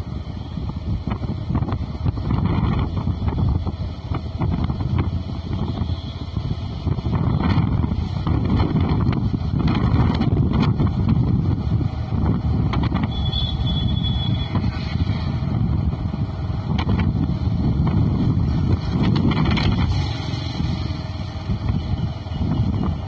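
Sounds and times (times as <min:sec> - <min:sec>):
motorbike running: 0:00.0 - 0:23.0
wind rumbling on microphone: 0:00.0 - 0:23.0.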